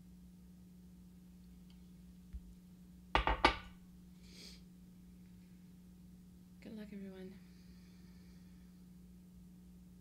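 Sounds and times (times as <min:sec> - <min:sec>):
sharp ringing knocks: 0:03.2 - 0:03.7.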